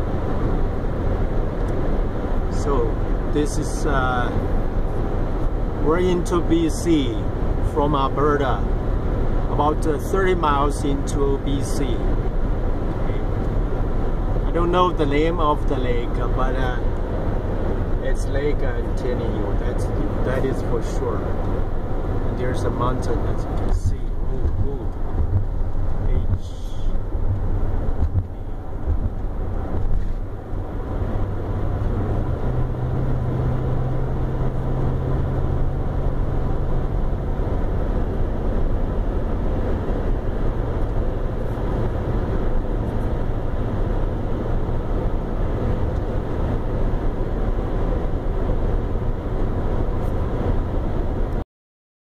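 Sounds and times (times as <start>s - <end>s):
tyres rumbling on pavement: 12.0s - 51.3s.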